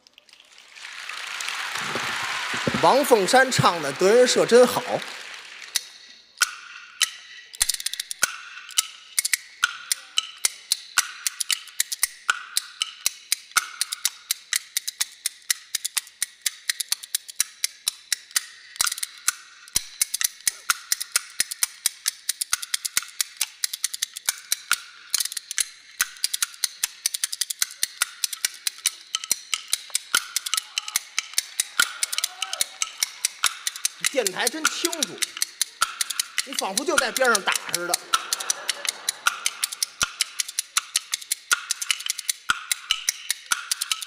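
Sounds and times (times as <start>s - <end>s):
bamboo clappers clacking: 0.0s - 44.0s.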